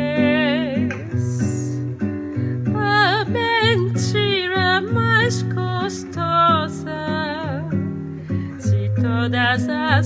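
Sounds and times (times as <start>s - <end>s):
woman singing with vibrato: 0.0s - 2.0s, 2.6s - 7.9s, 8.5s - 10.0s
acoustic guitar: 0.0s - 10.0s.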